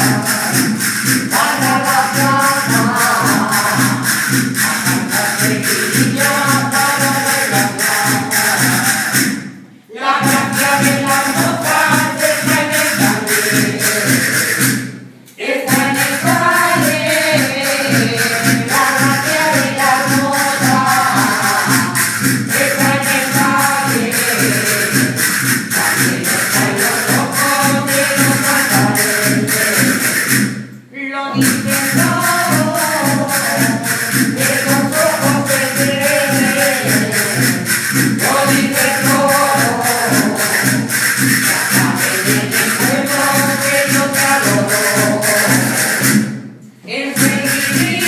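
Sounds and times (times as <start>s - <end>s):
barrel drums and percussion beat: 0.0s - 30.8s, 31.4s - 46.6s, 47.2s - 48.0s
group singing folk song in unison: 0.0s - 48.0s.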